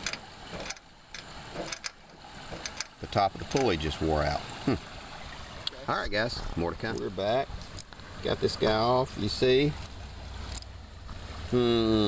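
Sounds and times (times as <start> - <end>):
socket ratchet clicking: 0.0 - 3.7.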